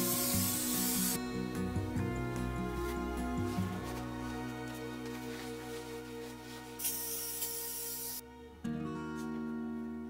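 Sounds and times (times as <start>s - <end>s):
acoustic guitar music: 0.0s - 7.5s, 8.4s - 10.0s
brief hiss: 6.8s - 8.2s.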